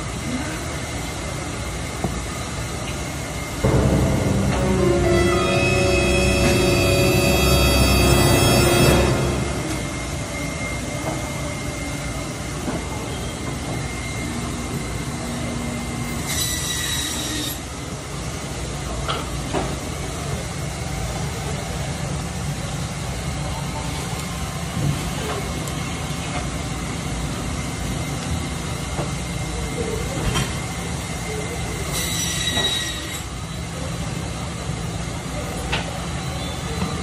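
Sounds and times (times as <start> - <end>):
machine-like rumble and hiss: 0.0 - 37.0
brief high-pitched squeal: 16.2 - 17.6, 31.9 - 33.4.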